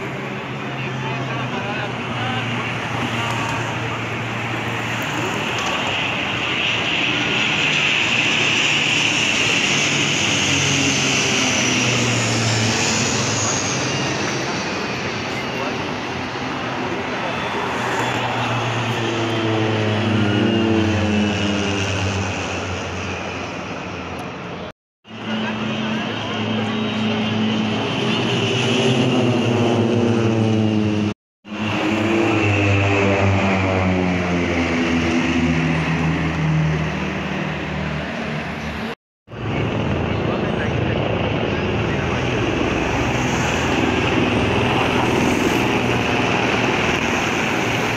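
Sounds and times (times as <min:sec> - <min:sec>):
propeller aircraft droning overhead: 0:00.0 - 0:47.9.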